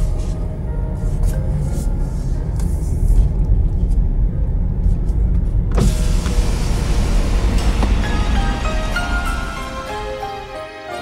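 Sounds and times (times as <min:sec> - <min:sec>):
car cabin low rumble: 0:00.0 - 0:10.2.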